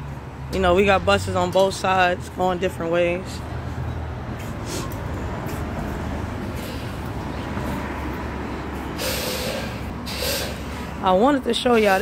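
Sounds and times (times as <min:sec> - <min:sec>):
low rumble of street traffic: 0:00.0 - 0:12.0
bus air brakes hissing: 0:04.4 - 0:05.0, 0:06.5 - 0:07.1, 0:08.8 - 0:11.0.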